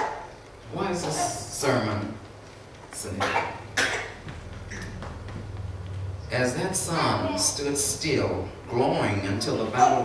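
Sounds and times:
man speaking: 0.7s - 2.3s, 6.2s - 10.0s
man coughing: 3.2s - 4.9s.

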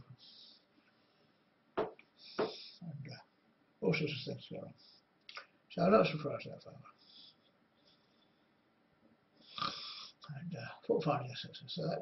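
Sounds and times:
man breathing sharply: 2.2s - 2.8s.

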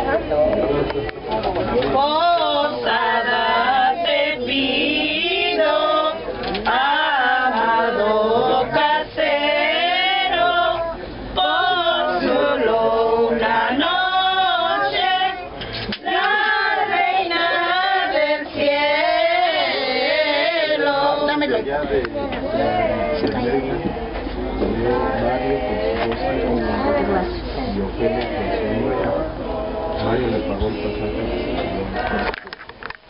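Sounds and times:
group singing together: 1.7s - 32.4s.

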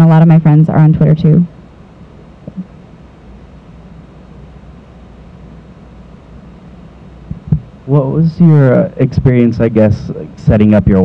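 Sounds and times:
room hum: 0.0s - 11.0s
person speaking: 7.3s - 11.0s.

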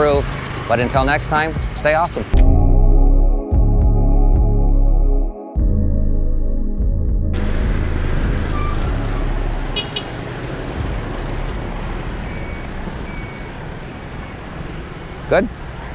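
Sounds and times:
passing vehicles rumble: 0.0s - 2.4s, 7.3s - 15.9s.

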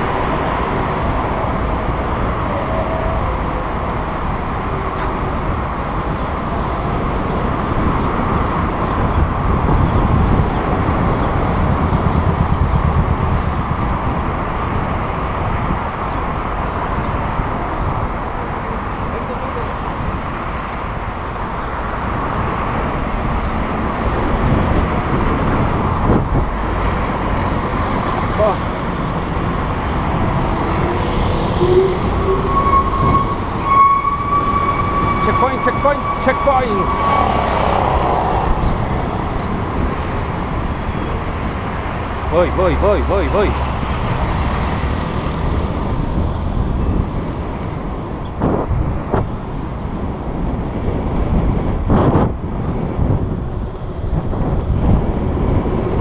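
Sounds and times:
wind rumble on microphone: 0.0s - 42.6s, 43.4s - 56.0s
cars passing close by: 0.0s - 56.0s
city road traffic: 0.0s - 56.0s.

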